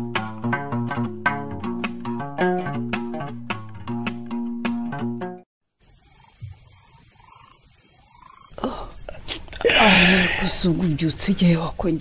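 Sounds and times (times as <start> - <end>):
faint animal calls: 6.0 - 10.5.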